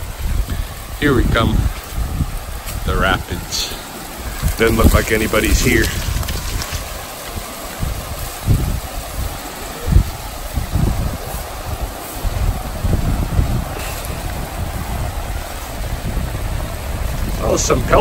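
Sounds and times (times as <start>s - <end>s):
river rapids rushing: 0.0s - 18.0s
wind buffeting microphone: 0.0s - 18.0s.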